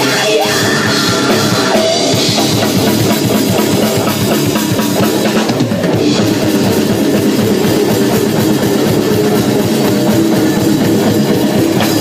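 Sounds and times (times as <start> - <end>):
drum kit: 0.0 - 12.0
electric bass: 0.0 - 12.0
electric guitar: 0.0 - 12.0.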